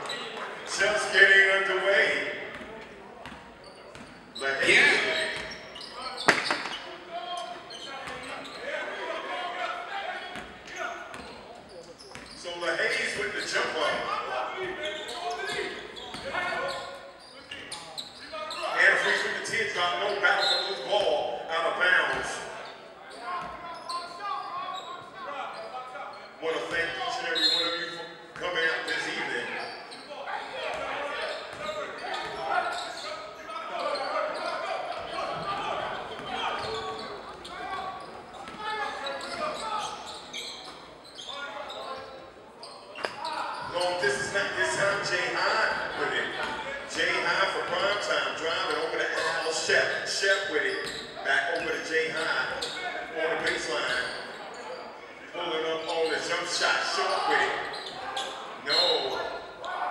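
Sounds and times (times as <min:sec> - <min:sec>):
people calling out and chatting: 0:00.0 - 0:59.9.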